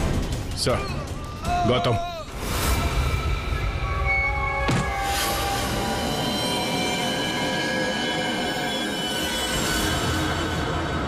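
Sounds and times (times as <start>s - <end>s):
screeching high tones: 2.4s - 11.0s.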